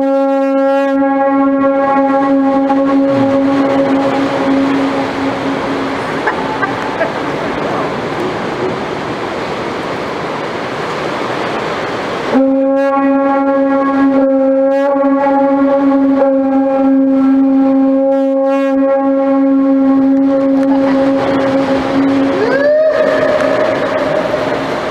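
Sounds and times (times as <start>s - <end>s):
conch shell horn note: 0.0s - 6.7s, 12.3s - 24.4s
steady background noise: 0.0s - 24.9s.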